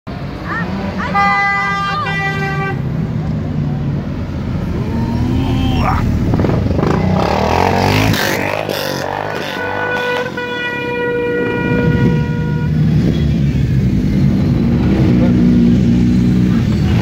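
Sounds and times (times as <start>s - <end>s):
motorcycles passing: 0.1s - 17.0s
vehicle horn: 1.0s - 2.9s, 9.1s - 13.4s.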